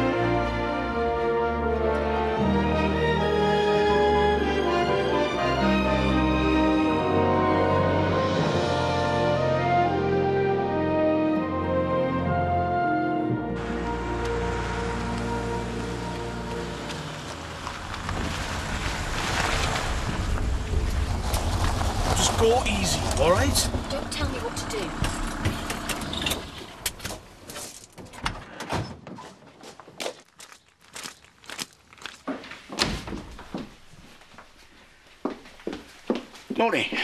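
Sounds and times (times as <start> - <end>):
van passing by: 13.5 - 27.4
footsteps: 14.2 - 25.8, 29.0 - 37.0.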